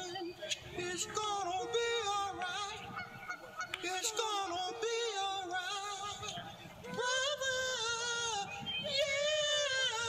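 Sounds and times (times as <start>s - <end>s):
man singing a cappella: 0.0s - 3.1s, 3.8s - 10.0s.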